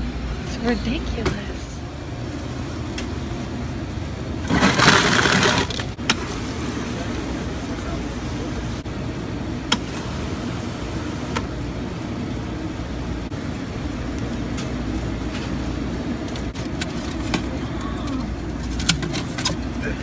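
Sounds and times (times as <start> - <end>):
ice clattering into a cup: 4.5 - 5.9.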